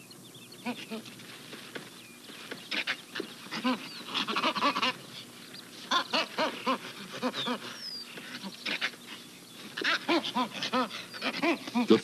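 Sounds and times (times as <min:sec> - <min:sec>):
chimpanzees laughing: 0:02.9 - 0:12.0.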